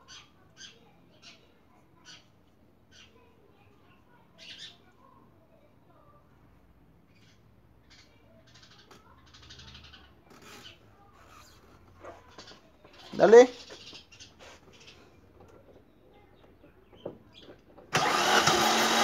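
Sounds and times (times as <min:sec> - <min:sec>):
faint clicks and scrapes: 0:10.2 - 0:17.9.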